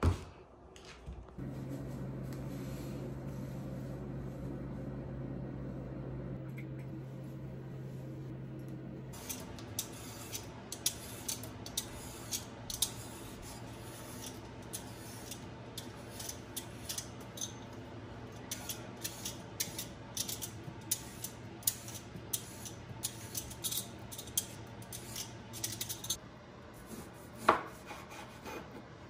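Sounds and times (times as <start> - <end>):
steady low hum: 1.3 - 26.8.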